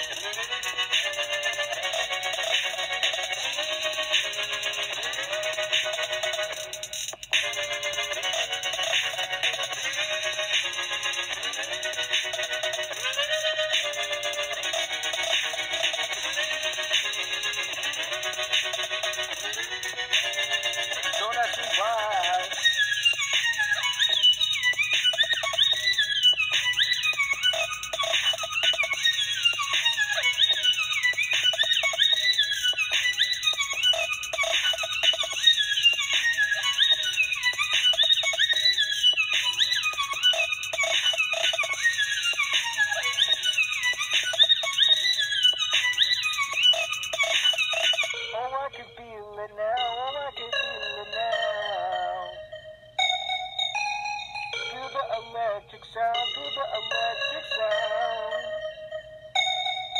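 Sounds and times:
wavering synth chords: 0.0s - 59.9s.

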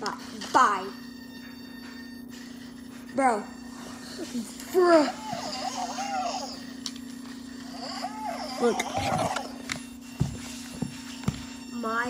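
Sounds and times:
steady low hum: 0.0s - 12.0s
toy robot electronic warbling: 5.1s - 6.8s, 7.6s - 9.6s.

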